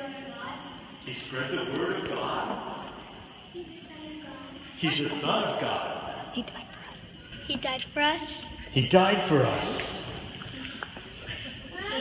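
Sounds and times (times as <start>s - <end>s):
faint room murmur: 0.0s - 12.0s
man speaking: 1.0s - 2.8s, 4.8s - 6.1s, 8.7s - 10.2s.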